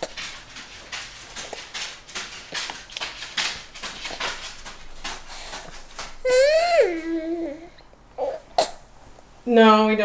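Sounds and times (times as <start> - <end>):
toddlers chewing: 0.0 - 8.9.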